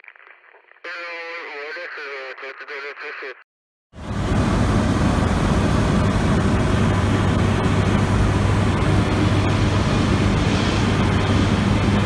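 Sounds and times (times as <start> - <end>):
radio hiss: 0.0 - 3.4
person speaking over radio: 0.8 - 3.4.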